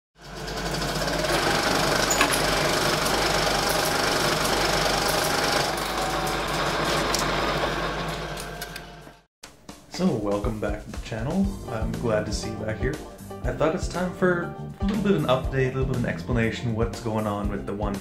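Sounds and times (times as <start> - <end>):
harsh buzzing rattle: 0.2 - 8.6.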